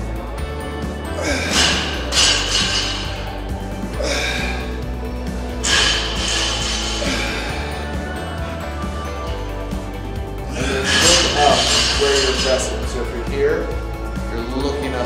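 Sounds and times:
background music with bass line: 0.0 - 15.0
man grunting and exhaling: 1.2 - 2.0, 4.0 - 4.8.

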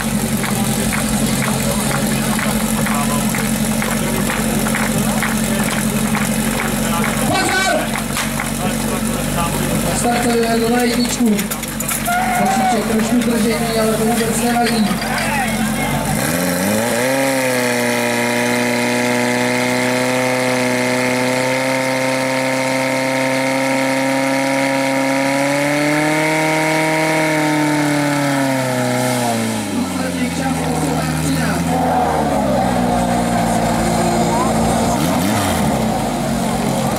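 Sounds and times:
fire pump engine revving: 0.0 - 36.9.

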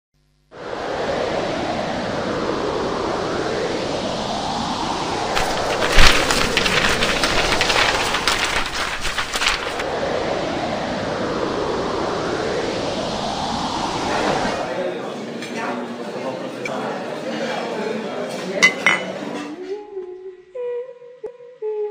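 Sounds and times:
gusting wind whooshing: 0.5 - 15.3
papers flapping in wind: 4.5 - 14.6.

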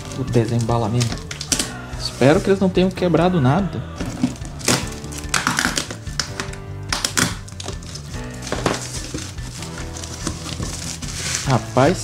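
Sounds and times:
background music: 0.0 - 12.0
cardboard and plastic wrapping tearing: 4.0 - 12.0.

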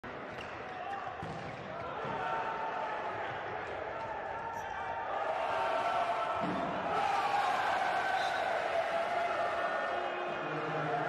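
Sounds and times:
sports hall ambience: 0.0 - 11.0.

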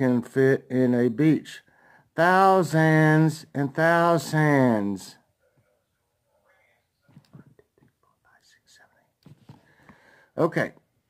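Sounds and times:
soft hissy sounds: 3.0 - 11.0.

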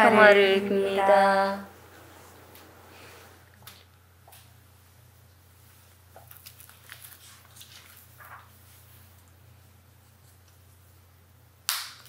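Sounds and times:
steady low hum: 0.0 - 6.2
sharp crack: 11.7 - 12.0.

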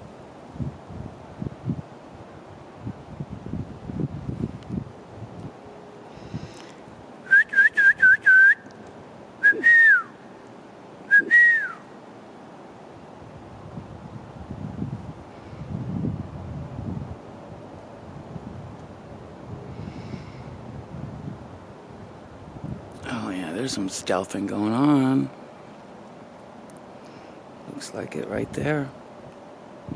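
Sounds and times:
person whistling: 7.3 - 8.7, 9.4 - 10.1, 11.1 - 11.8.

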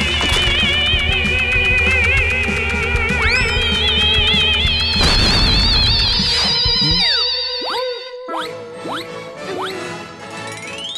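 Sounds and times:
cartoon boing swoops: 5.0 - 9.8.

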